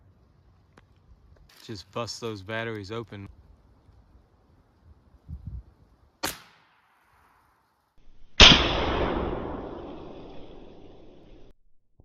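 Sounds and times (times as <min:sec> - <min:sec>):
airgun firing: 0:06.2 - 0:07.4, 0:08.3 - 0:11.5.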